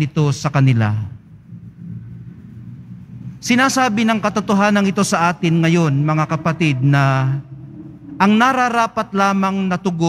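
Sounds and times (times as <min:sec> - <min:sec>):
low room tone rumble: 0:00.0 - 0:10.0.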